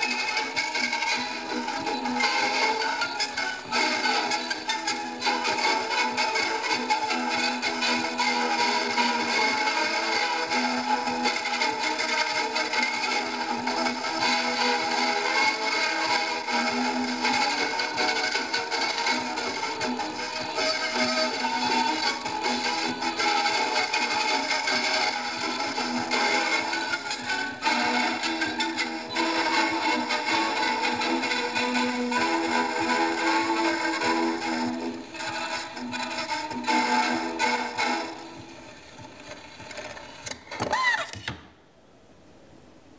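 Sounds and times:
gramophone music: 0:00.0 - 0:41.1
record surface hiss: 0:00.0 - 0:42.9.

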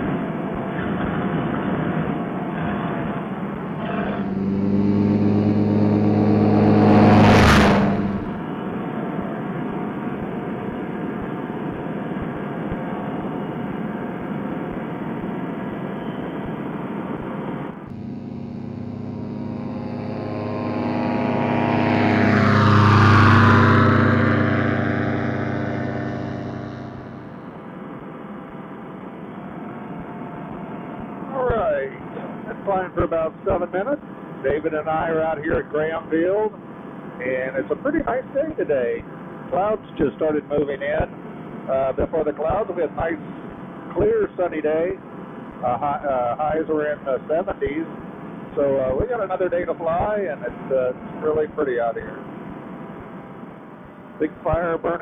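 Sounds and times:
paramotor engine drone: 0:00.0 - 0:15.3, 0:17.7 - 0:28.1.

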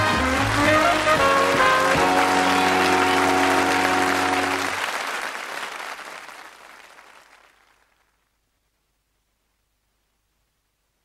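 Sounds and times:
theme music closing chord: 0:00.0 - 0:04.8
studio audience applauding: 0:00.0 - 0:08.2.

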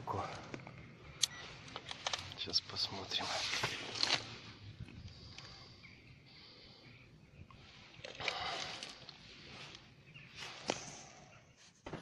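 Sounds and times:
handling rustle: 0:01.4 - 0:04.5.

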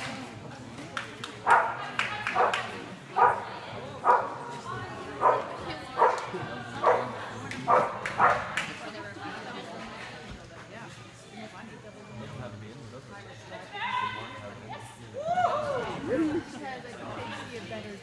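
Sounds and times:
dog barking in indoor arena: 0:01.4 - 0:04.5, 0:05.2 - 0:08.6.

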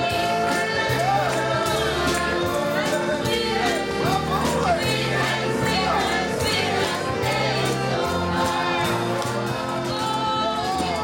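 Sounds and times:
amplified instrumental accompaniment: 0:00.0 - 0:11.0
backing singers: 0:00.0 - 0:11.0.

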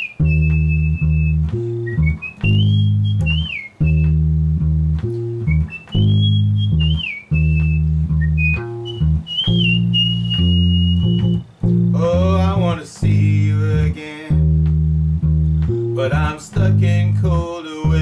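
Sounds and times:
high lead melody: 0:00.0 - 0:12.0, 0:14.4 - 0:17.2
electric bass guitar: 0:00.0 - 0:18.0
person singing: 0:11.9 - 0:14.5, 0:16.0 - 0:18.0.

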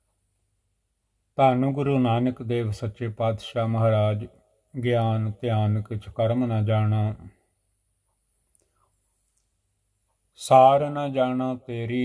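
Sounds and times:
man's voice: 0:01.4 - 0:07.3, 0:10.4 - 0:12.0.

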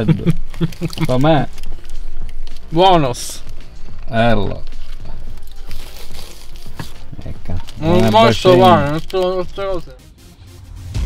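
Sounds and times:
paper wrapper crinkling: 0:00.0 - 0:09.9.

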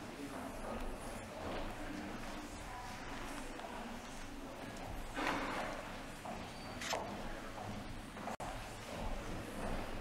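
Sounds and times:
murmur of distant voices: 0:00.0 - 0:10.0
shuffling footsteps: 0:00.0 - 0:10.0.

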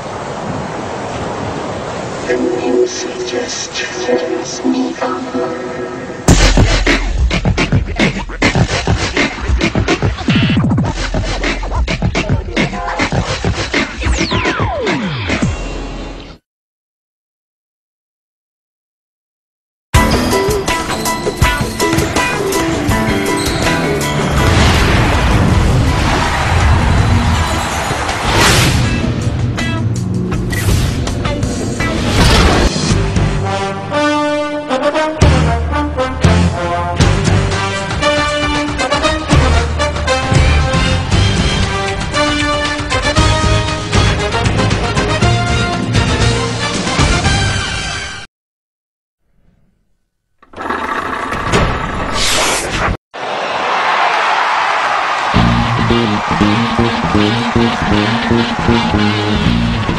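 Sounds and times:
rising sweep: 0:02.2 - 0:06.3
intro music: 0:02.2 - 0:08.9, 0:55.4 - 0:59.9
sharp hit: 0:06.2 - 0:07.3
deep boom: 0:06.3 - 0:07.9.

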